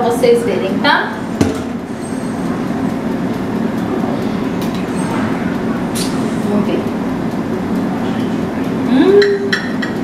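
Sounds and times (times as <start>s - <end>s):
low mechanical rumble: 0.0s - 10.0s
knock: 1.4s - 1.7s.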